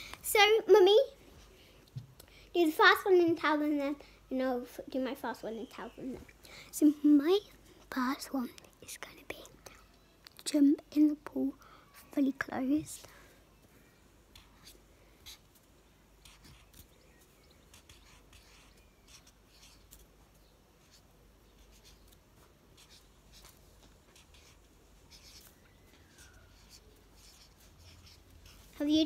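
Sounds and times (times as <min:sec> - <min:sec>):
highlighter scratching on paper: 0:14.3 - 0:15.6, 0:16.2 - 0:20.1, 0:20.8 - 0:29.0.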